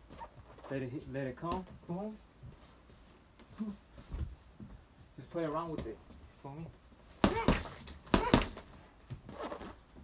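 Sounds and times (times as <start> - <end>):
faint movement sounds: 0.0 - 10.0
gloved punches on heavy bag: 7.2 - 8.8.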